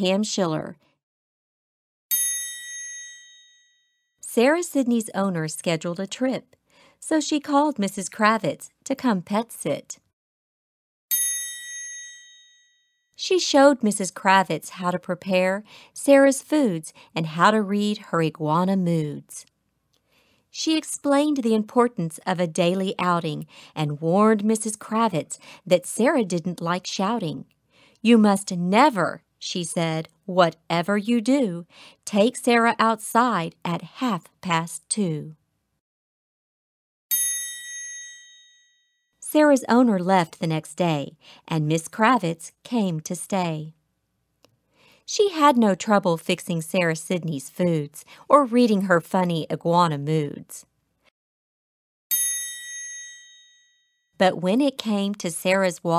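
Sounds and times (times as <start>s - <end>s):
high bright chime: 2.1s - 4.0s, 11.1s - 13.0s, 37.1s - 38.9s, 52.1s - 53.9s.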